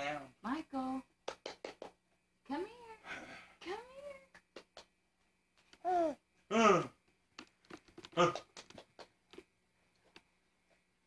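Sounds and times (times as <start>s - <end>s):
baby whining: 5.8s - 6.2s
baby mouth clicks: 7.4s - 9.4s.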